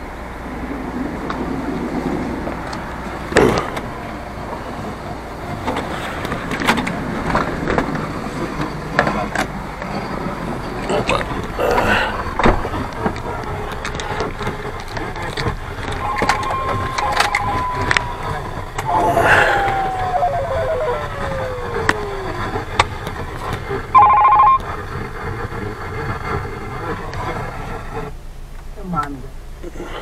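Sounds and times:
car cabin background noise: 0:00.0 - 0:30.0
clicks: 0:12.9 - 0:24.7
electronic tones: 0:15.9 - 0:22.9, 0:23.9 - 0:24.6
loud electronic beep: 0:16.0 - 0:22.5, 0:24.0 - 0:24.6.

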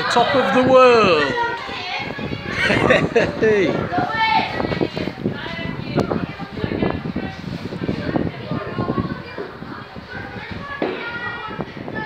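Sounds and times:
children talking and playing: 0:00.0 - 0:12.0.

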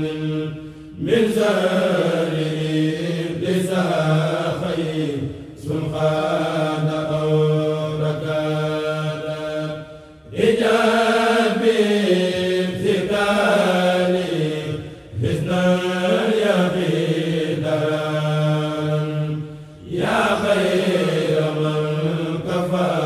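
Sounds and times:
men chanting: 0:00.0 - 0:23.0.

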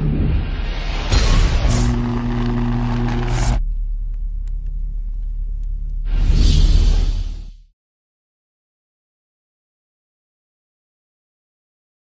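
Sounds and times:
low rumbling drone: 0:00.0 - 0:07.6
low steady hum-like tone: 0:03.5 - 0:06.1.

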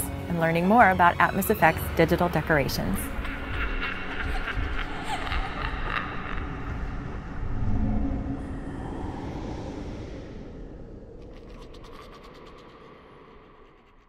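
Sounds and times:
mechanical creaking texture: 0:11.2 - 0:14.0.

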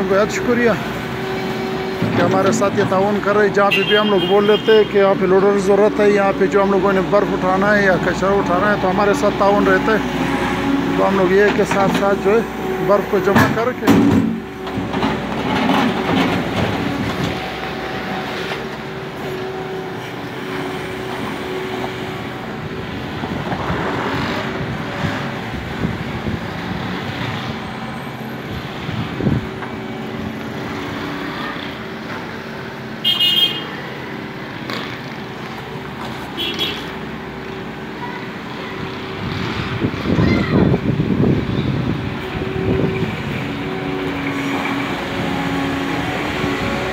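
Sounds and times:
loader engine running: 0:00.0 - 0:46.9
street traffic: 0:00.0 - 0:46.9.

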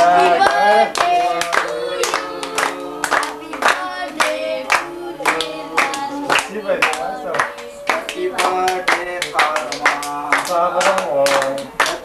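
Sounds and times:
group singing: 0:00.0 - 0:12.0
rhythmic hand claps: 0:00.0 - 0:12.0.

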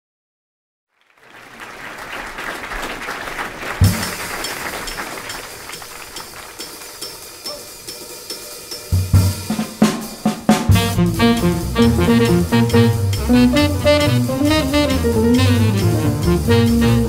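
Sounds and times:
jazz drum kit on cymbals and snare: 0:03.8 - 0:17.0
low bass notes: 0:10.7 - 0:17.0.

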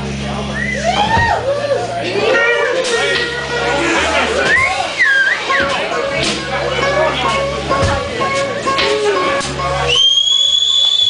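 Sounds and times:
electric guitar notes: 0:01.8 - 0:10.8
loud high whistle: 0:09.9 - 0:11.0.

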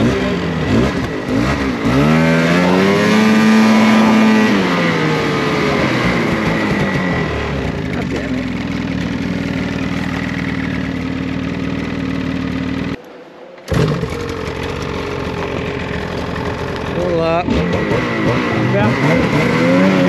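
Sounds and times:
snowmobile engine running: 0:00.0 - 0:13.0, 0:13.7 - 0:20.0.

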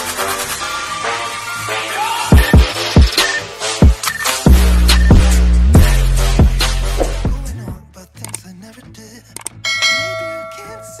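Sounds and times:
bell ding: 0:09.7 - 0:11.0.

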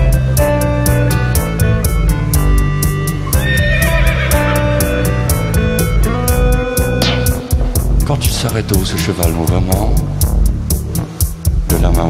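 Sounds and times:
music with percussive beat and guitar: 0:00.0 - 0:12.0
horse whinny: 0:03.3 - 0:05.0.

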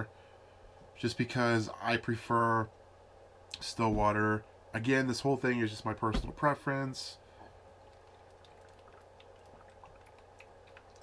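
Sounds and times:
low steady hum: 0:00.0 - 0:11.0
sipping and swallowing: 0:07.8 - 0:11.0.

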